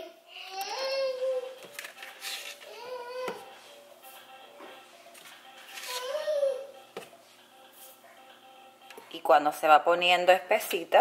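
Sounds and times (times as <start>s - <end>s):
faint music: 0.0s - 11.0s
infant fussing: 5.7s - 6.7s.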